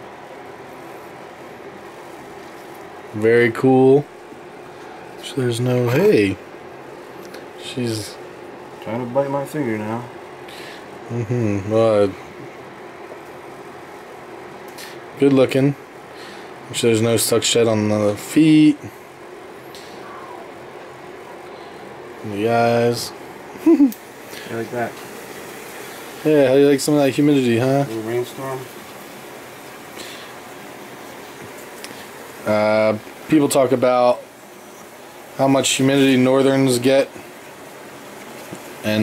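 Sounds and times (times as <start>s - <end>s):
room hum and hiss: 0.0s - 39.0s.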